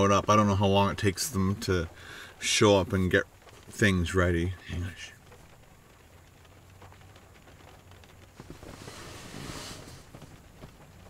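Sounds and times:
light rain pattering on car: 0.0s - 11.0s.

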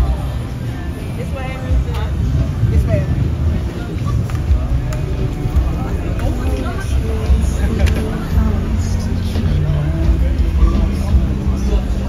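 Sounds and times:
people chattering: 0.0s - 12.0s
car engine idling: 3.3s - 12.0s.

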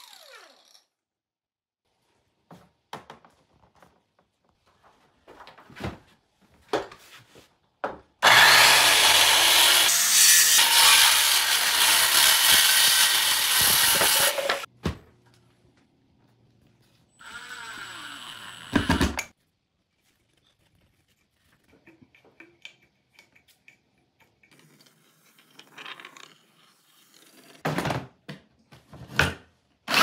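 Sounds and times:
quieter power tool running: 8.2s - 10.0s
circular saw cutting wood: 8.2s - 14.7s, 17.2s - 19.2s.

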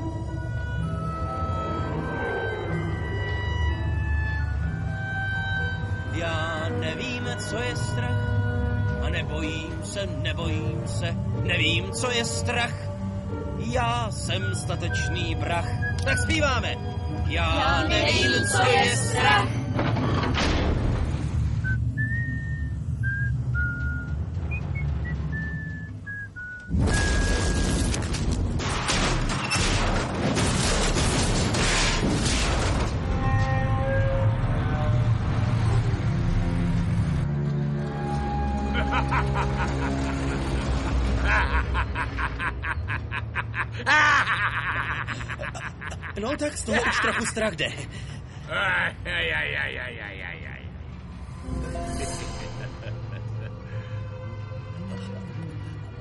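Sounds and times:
person whistling a tune: 21.6s - 27.1s.

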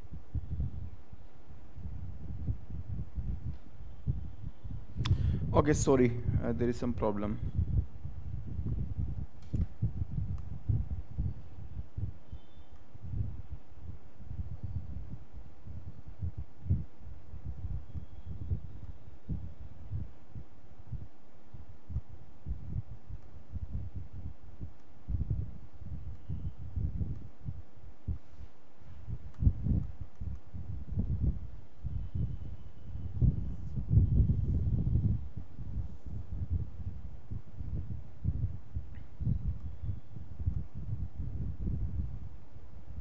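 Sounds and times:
faint steady hum: 0.0s - 43.0s.

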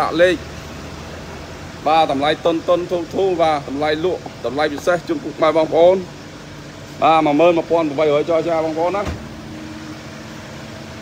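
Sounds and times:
van engine idling: 0.0s - 11.0s
low thump: 9.0s - 9.4s.

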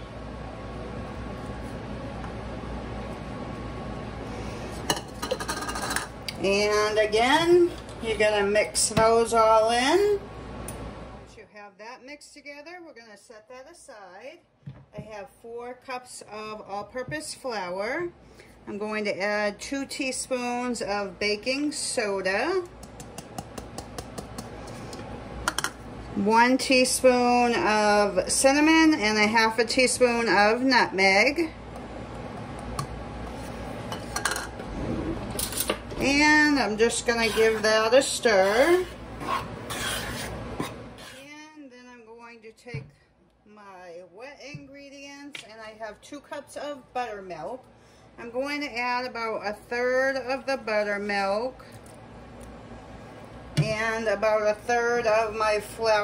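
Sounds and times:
low room hum: 0.0s - 56.0s.

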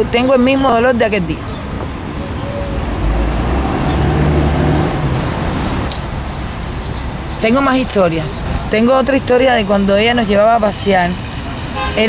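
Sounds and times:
passing vehicle engine rumble: 0.0s - 12.0s
traffic noise: 0.0s - 12.0s.

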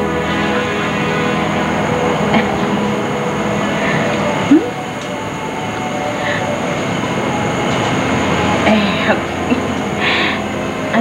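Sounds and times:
rushing rumble: 0.0s - 11.0s.

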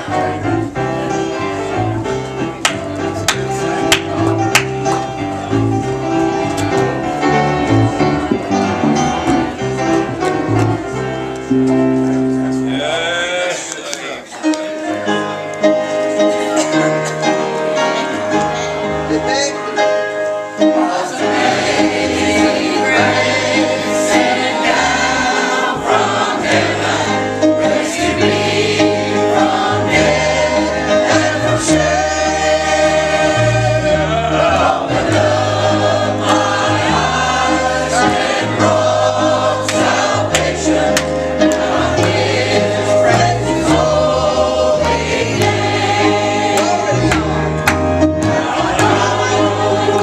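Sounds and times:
choir singing a hymn: 0.0s - 19.1s, 19.8s - 50.0s
instrumental accompaniment: 0.0s - 50.0s.

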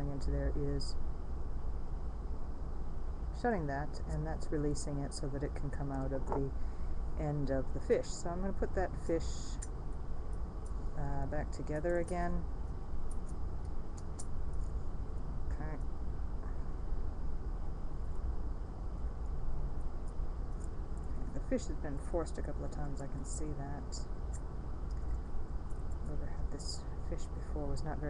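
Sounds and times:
low background rumble: 0.0s - 28.0s.

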